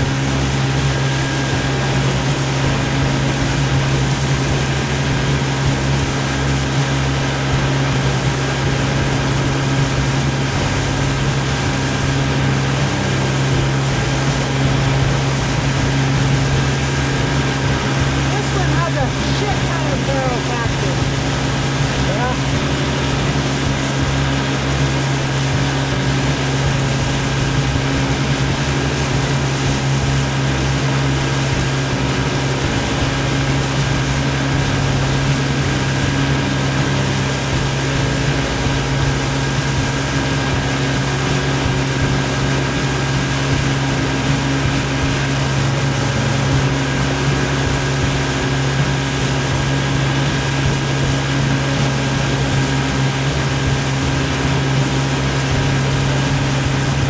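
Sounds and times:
motorboat engine running: 0:00.0 - 0:57.0.

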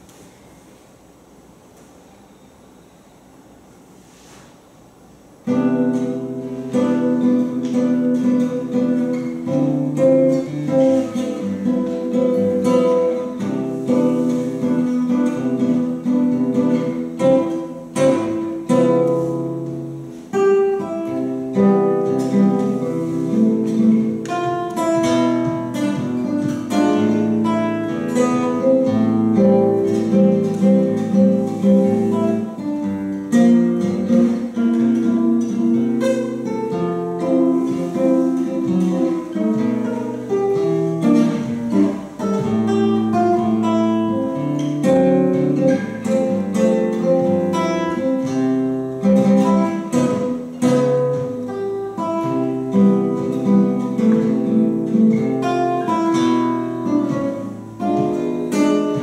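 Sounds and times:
solo classical guitar: 0:00.0 - 0:59.0.

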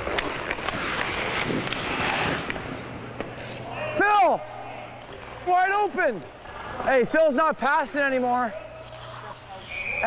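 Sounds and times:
sticks and pucks clicking: 0:00.0 - 0:03.3
skates scraping on ice: 0:00.0 - 0:03.7, 0:06.4 - 0:10.0.

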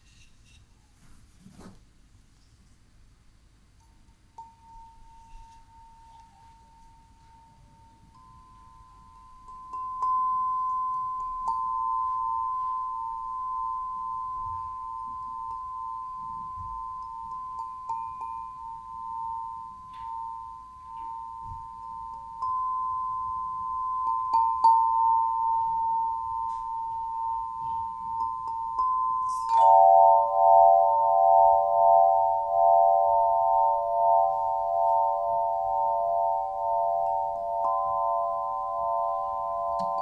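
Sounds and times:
metal chime tubes struck: 0:04.4 - 0:40.0.

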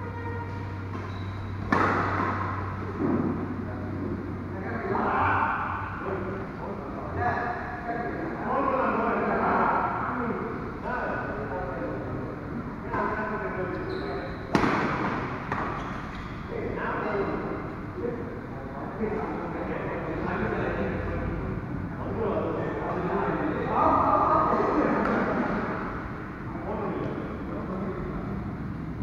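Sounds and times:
voices talking: 0:00.0 - 0:28.6.

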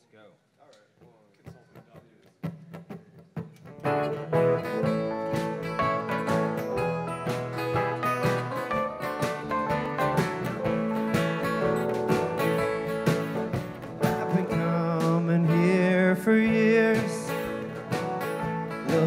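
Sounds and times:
soft guitar plucks: 0:02.4 - 0:19.0
bluegrass band playing: 0:03.5 - 0:19.0.

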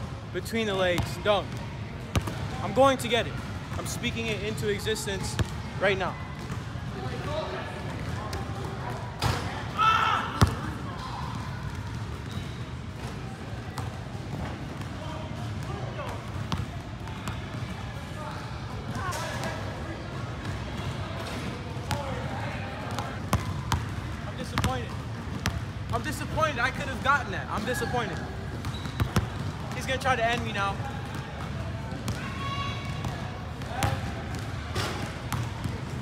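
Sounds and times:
basketball bouncing on court floor: 0:00.9 - 0:02.6, 0:05.3 - 0:05.6, 0:10.4 - 0:10.6, 0:14.8 - 0:17.6, 0:22.9 - 0:26.2, 0:28.5 - 0:36.0.

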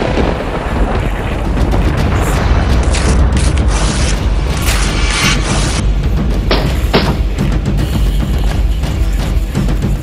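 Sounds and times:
low thunder-like rumble: 0:00.0 - 0:04.6.

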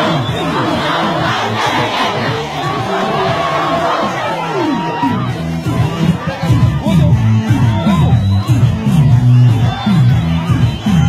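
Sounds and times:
huge crowd shouting and cheering: 0:00.0 - 0:11.0.

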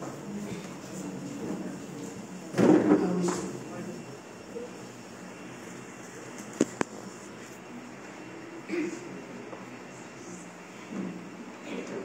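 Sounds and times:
large hall background hum: 0:00.0 - 0:12.0.

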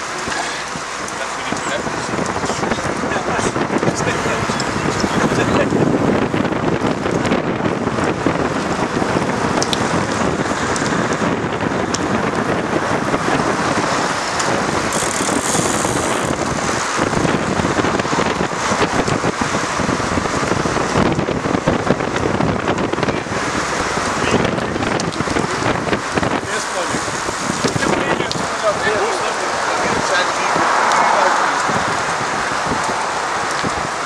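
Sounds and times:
wind rushing over microphone: 0:00.0 - 0:34.0.

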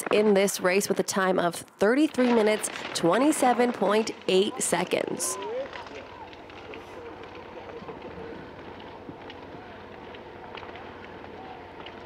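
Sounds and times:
skis and poles on snow: 0:02.2 - 0:12.0
faint voices: 0:02.5 - 0:12.0.

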